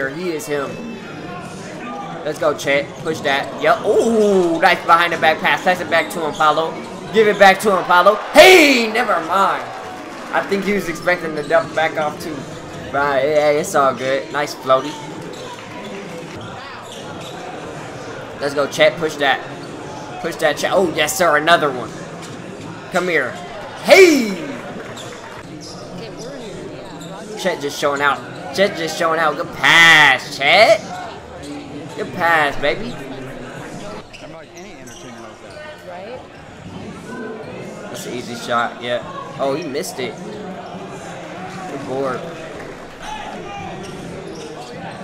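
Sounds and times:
crowd chatter: 0.0s - 45.0s
voices in gym: 0.0s - 45.0s.

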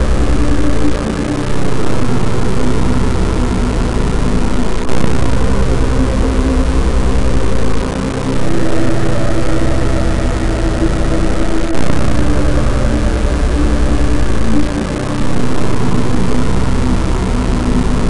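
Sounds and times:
distorted electronic music drone: 0.0s - 18.0s.

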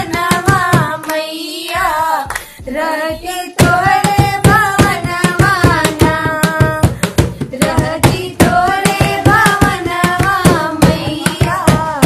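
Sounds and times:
rhythmic hand clapping: 0.0s - 12.0s
women singing folk song: 0.0s - 12.0s.

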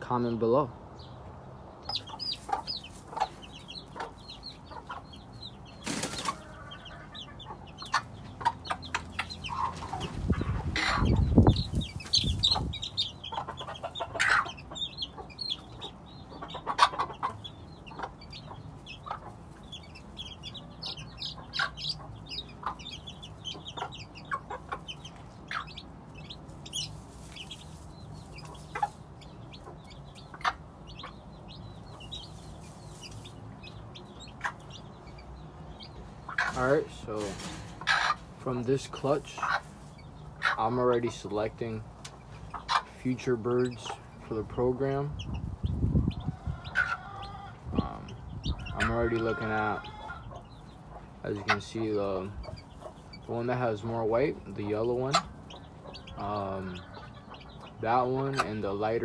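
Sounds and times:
chicks peeping: 0.0s - 59.0s
hen clucking: 0.0s - 59.0s.

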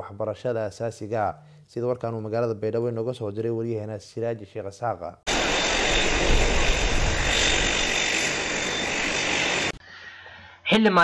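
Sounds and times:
turboprop engines running: 5.3s - 9.8s.

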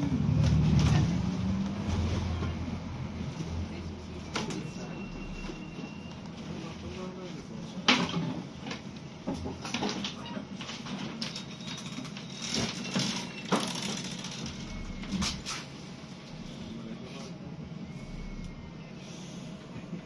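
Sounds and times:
bus engine and road drone: 0.0s - 7.8s, 14.1s - 20.0s
knocks and rattles of bus fittings: 7.8s - 15.7s.

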